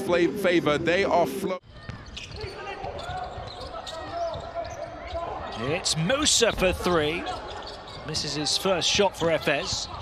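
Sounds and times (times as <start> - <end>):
players' voices: 0.0 - 10.0
sneaker squeaks: 1.7 - 5.8, 6.6 - 10.0.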